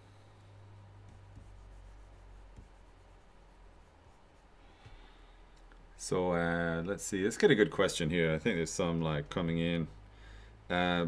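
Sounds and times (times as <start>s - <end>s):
stylus scratching on tablet: 1.0s - 4.6s.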